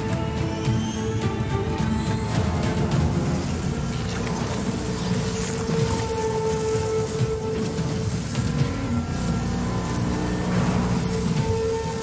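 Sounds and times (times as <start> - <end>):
film score with long held notes: 0.0 - 12.0
pickup truck engine rumbling: 0.0 - 12.0.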